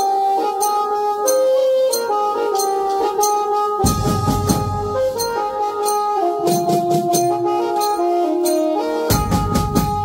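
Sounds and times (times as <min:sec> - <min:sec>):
keyboard melody: 0:00.0 - 0:10.0
drums: 0:03.8 - 0:05.5, 0:06.4 - 0:07.7, 0:09.1 - 0:10.0.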